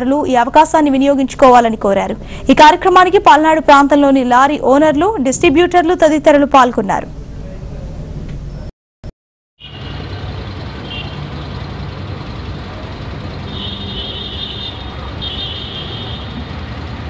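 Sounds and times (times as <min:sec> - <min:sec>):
motor vehicle engine running: 0:09.6 - 0:17.0.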